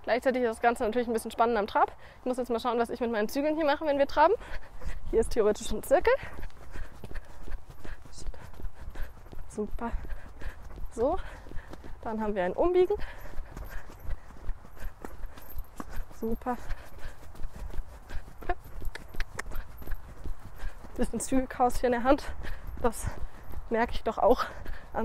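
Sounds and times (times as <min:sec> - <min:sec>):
pony hooves trotting on wet sand: 0:00.0 - 0:25.0.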